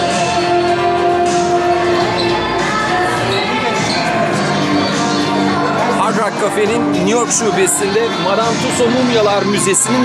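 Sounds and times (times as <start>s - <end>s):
background music: 0.0s - 10.0s
voices of people: 0.0s - 10.0s.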